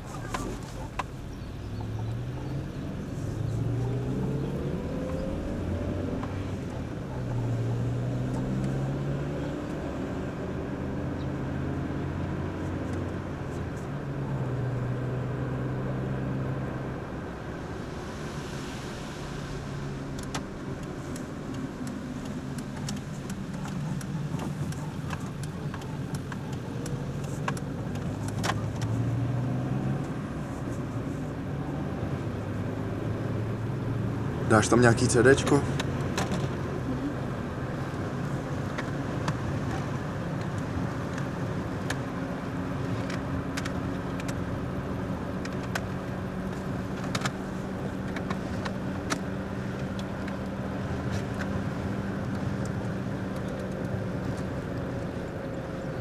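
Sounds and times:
car engine accelerating: 0.0s - 56.0s
road noise: 0.0s - 56.0s
wind: 0.0s - 56.0s.

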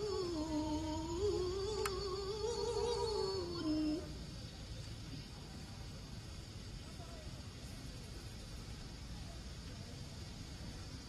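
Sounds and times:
woman reciting with vibrato: 0.0s - 4.3s.

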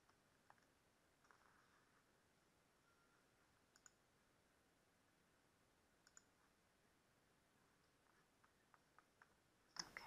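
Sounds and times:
faint mouse clicks: 0.0s - 1.8s, 3.7s - 4.0s, 6.0s - 6.4s, 7.8s - 10.0s.

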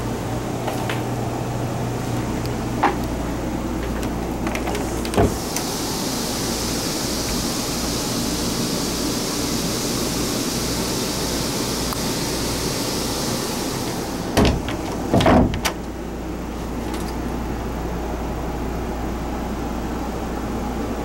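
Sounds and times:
air conditioning airflow hiss: 0.0s - 21.0s.

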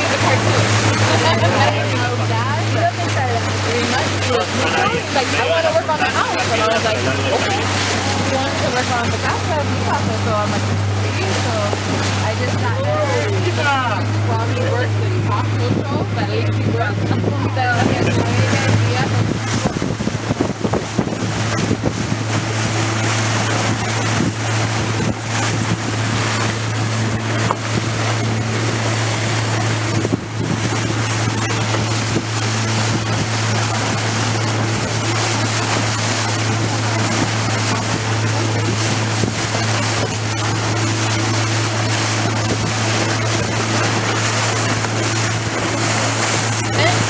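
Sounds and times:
motorboat engine running: 0.0s - 47.0s
water rushing along hull: 0.0s - 47.0s
wind buffeting microphone: 0.0s - 47.0s.

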